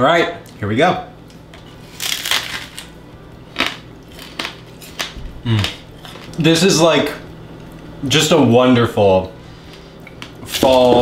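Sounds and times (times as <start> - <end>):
candy apple crunching: 1.2 - 6.5, 10.2 - 11.0
chewing crunch: 3.5 - 6.4.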